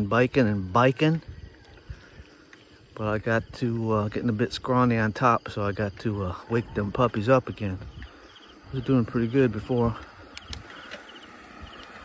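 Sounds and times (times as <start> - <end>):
insect chirping: 0.0 - 12.0
light clicks: 9.9 - 11.2.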